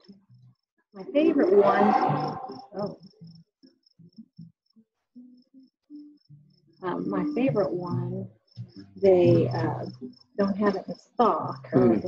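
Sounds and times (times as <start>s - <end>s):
person talking: 1.0s - 3.0s, 6.8s - 8.2s, 9.0s - 12.0s
crickets chirping: 1.0s - 4.4s, 5.3s - 12.0s.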